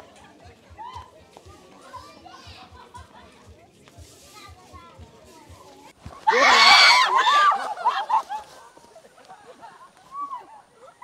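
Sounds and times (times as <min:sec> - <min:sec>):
chatter of voices: 0:00.0 - 0:11.0
quiet background music: 0:00.0 - 0:11.0.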